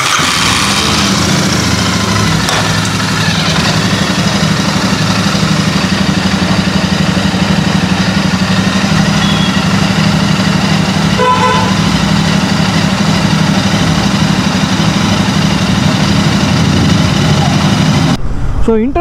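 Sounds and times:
motorcycle engine running: 0:00.0 - 0:18.2.

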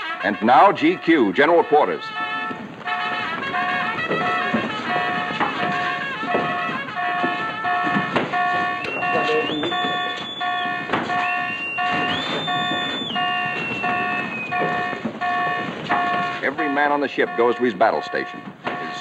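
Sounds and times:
pulsing ship alarm: 0:00.0 - 0:19.0
rising whistling tone: 0:08.7 - 0:14.7.

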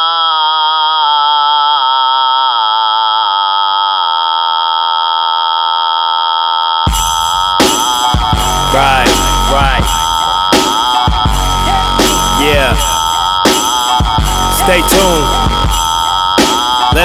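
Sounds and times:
steady high tone: 0:00.0 - 0:17.0
buzzy synth note: 0:06.9 - 0:17.0
hip-hop beat with drums: 0:06.9 - 0:17.0.

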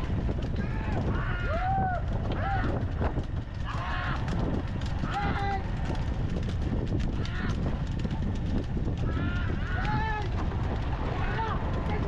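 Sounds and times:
low rumble of moving vehicles: 0:00.0 - 0:12.0.

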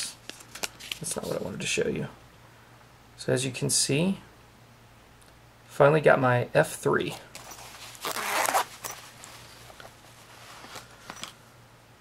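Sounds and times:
zipper pulled open: 0:07.4 - 0:09.9.

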